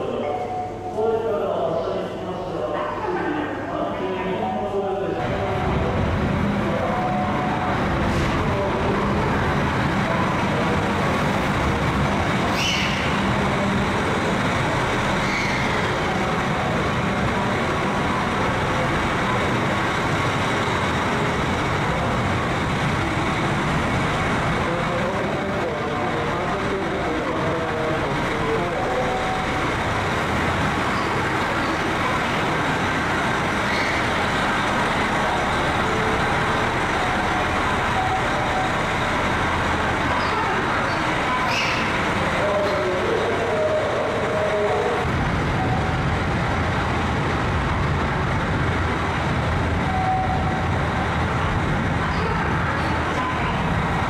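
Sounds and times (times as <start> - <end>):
diesel train engines running: 0.0 - 54.0.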